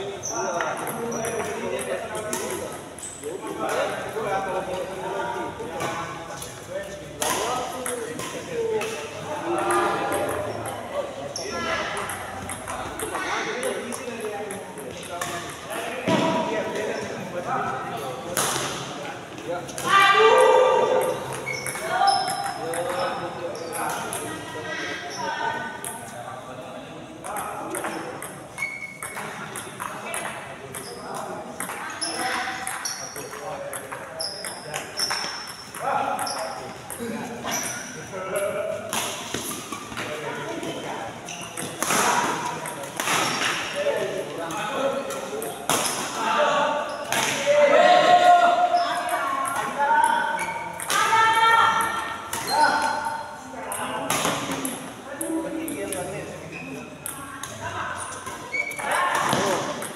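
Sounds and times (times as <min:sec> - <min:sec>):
shoes squeaking on court: 0:00.2 - 0:01.8, 0:21.1 - 0:24.3, 0:27.8 - 0:38.0, 0:39.2 - 0:41.8, 0:52.3 - 0:53.2, 0:55.6 - 0:59.9
rackets hitting shuttlecock: 0:41.3 - 0:43.8, 0:49.0 - 0:53.0, 0:58.2 - 0:59.9.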